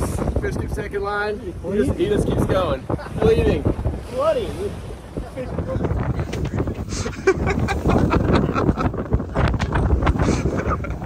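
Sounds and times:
wind buffeting microphone: 0.0s - 11.0s
people laughing and calling out: 6.4s - 9.0s.

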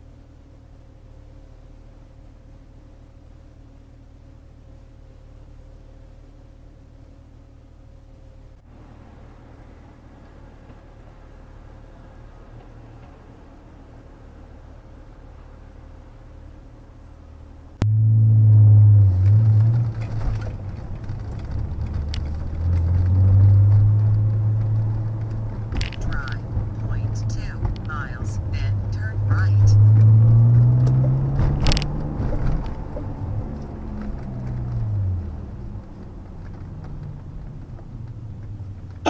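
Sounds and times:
car engine and road drone: 0.0s - 39.0s.

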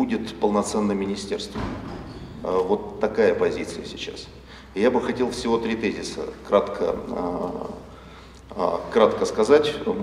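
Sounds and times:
man speaking: 0.0s - 1.8s, 2.4s - 7.9s, 8.5s - 10.0s.

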